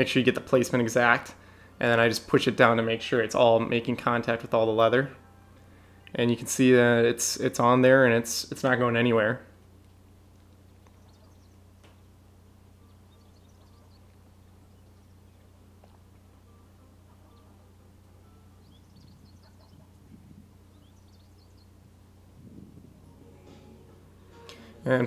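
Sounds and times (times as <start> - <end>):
distant birds chirping: 0.0 - 25.0
steady low hum: 0.0 - 25.0.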